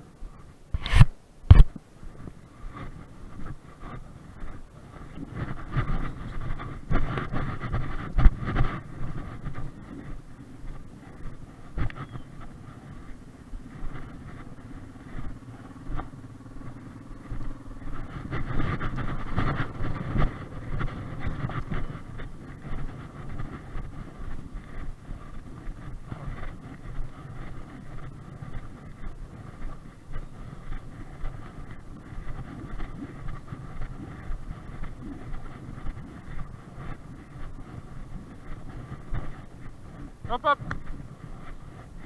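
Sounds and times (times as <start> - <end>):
quad bike engine running: 0.8 - 42.0.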